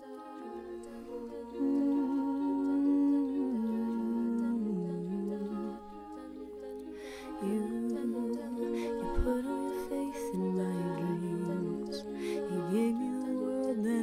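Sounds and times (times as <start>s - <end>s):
women singing a cappella chords: 0.0s - 14.0s.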